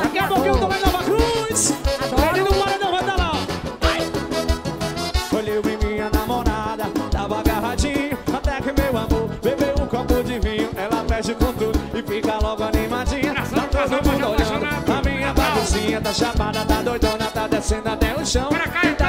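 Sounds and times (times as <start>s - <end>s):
horns playing: 0.0s - 5.7s, 15.4s - 17.8s
accordion melody: 0.0s - 19.0s
driving drum beat: 0.0s - 19.0s.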